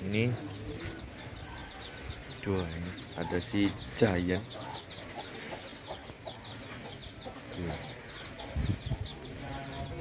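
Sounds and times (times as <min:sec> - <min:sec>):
high peeping bird calls: 0:00.0 - 0:10.0.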